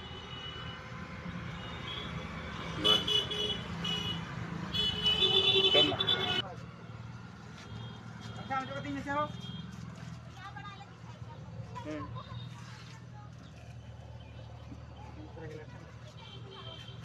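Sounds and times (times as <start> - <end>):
low rumble of engines: 0.0 - 17.0
vehicle horns honking: 1.5 - 6.4, 7.6 - 9.8.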